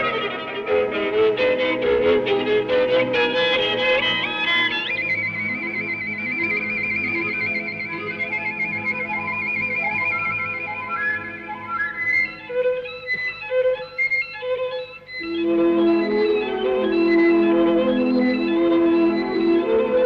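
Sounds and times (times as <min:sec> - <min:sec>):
orchestra playing: 0:00.0 - 0:08.2, 0:15.2 - 0:20.0
solo violin: 0:00.0 - 0:20.0.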